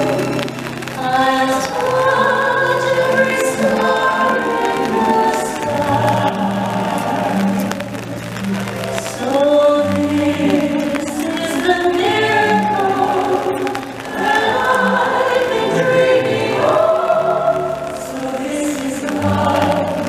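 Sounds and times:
choir singing held notes: 0.0s - 20.0s
outdoor crowd: 0.0s - 20.0s.

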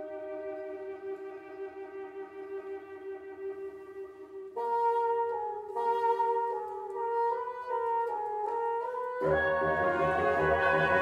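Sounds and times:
bassoon playing slurred figures: 4.6s - 11.0s
clarinet sustained note with trill: 4.6s - 11.0s.

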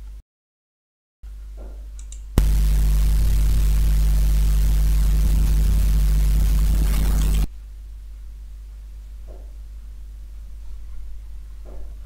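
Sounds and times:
low hum with hiss: 1.3s - 12.0s.

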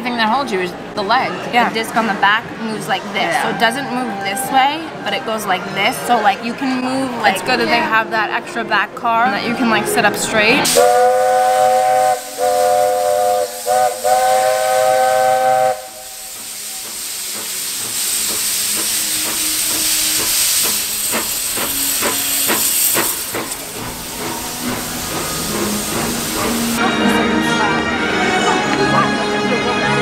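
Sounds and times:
steam hissing: 10.7s - 26.8s
steam locomotive chime whistle: 10.7s - 26.8s.

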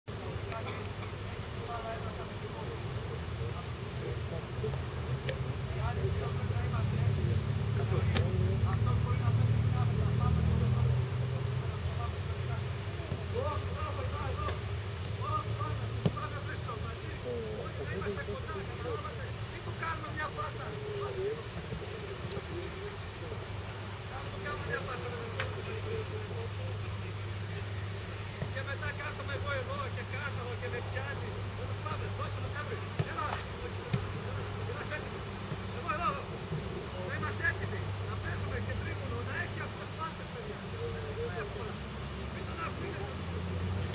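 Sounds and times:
man talking: 0.1s - 43.7s
distant men calling: 0.1s - 43.9s
football being kicked: 32.9s - 34.1s.

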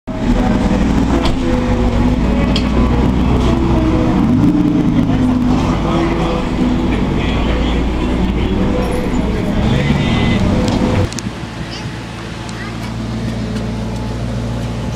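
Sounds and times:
sports car engines at low speed: 0.1s - 14.9s.

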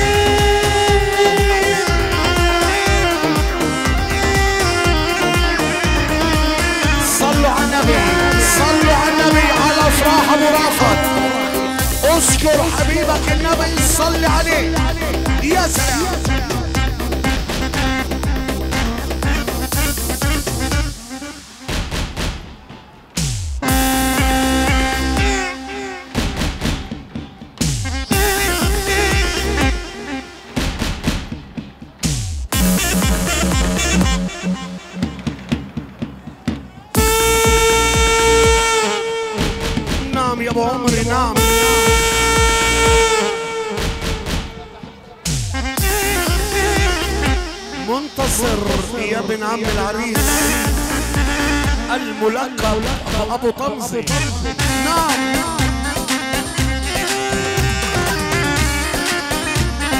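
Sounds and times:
end-blown flute melody: 0.0s - 21.7s, 23.6s - 30.7s, 31.3s - 48.8s
low drum beat: 0.0s - 38.8s, 39.4s - 49.0s, 49.7s - 59.9s
loud high held note: 7.8s - 12.4s.

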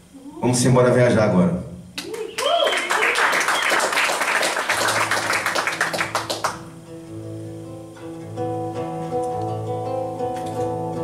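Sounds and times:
audience clapping and cheering: 2.0s - 6.7s.

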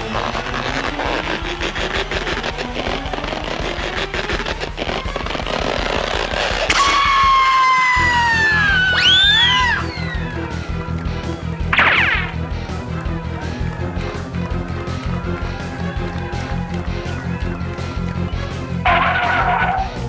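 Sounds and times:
wobbling whistle: 0.0s - 12.4s, 16.2s - 20.0s
cartoon background music: 0.0s - 20.0s
long falling whistle: 6.7s - 10.6s.

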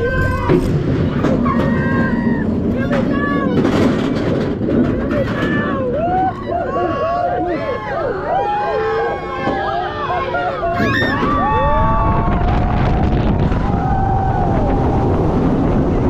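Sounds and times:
riders shouting and shrieking: 0.0s - 3.8s, 5.0s - 12.5s
roller coaster train rumble: 0.0s - 16.0s
wind: 0.0s - 16.0s.

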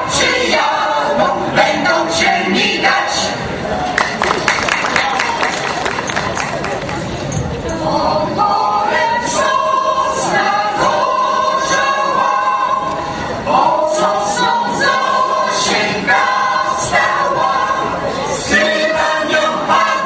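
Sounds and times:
mixed choir singing unaccompanied: 0.0s - 3.7s, 7.7s - 20.0s.

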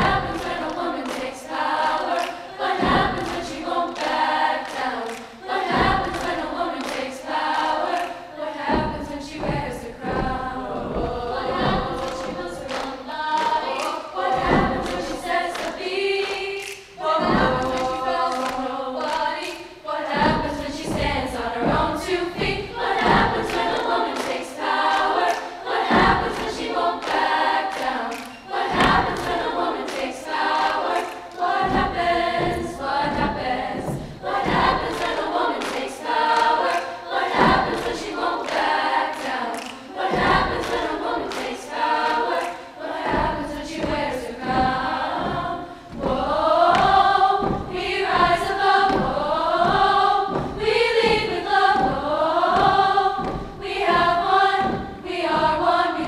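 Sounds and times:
women's choir singing: 0.0s - 56.0s
low thump: 8.6s - 12.7s, 14.3s - 15.2s, 20.1s - 23.7s, 31.6s - 35.4s, 43.0s - 56.0s.

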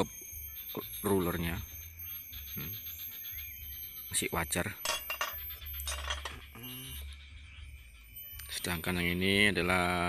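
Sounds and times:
person humming: 6.6s - 7.0s.

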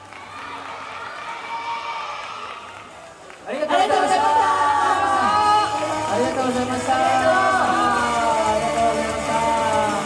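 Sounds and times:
audience cheering and calling out: 0.0s - 10.0s
crowd noise: 0.0s - 10.0s.

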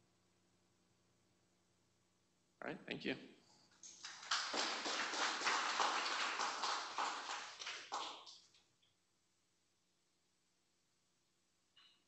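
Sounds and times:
audience applauding: 3.8s - 8.4s.

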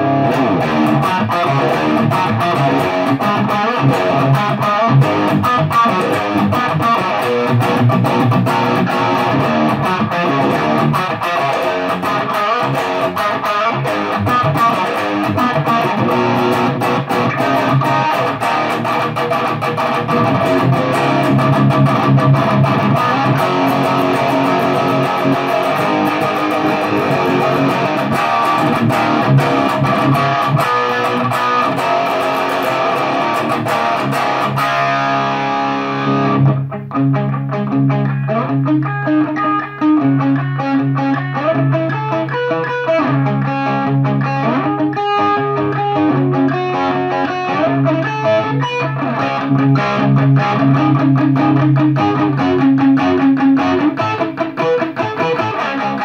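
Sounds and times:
overdriven electric guitar: 0.0s - 56.0s.

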